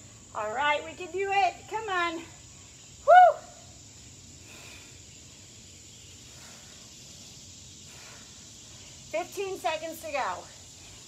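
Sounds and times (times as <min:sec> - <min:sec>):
even hiss: 0:00.0 - 0:11.0.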